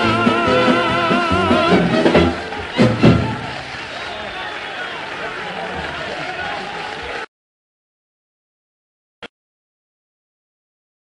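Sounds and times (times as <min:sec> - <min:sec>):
audience murmur: 0:01.8 - 0:07.3.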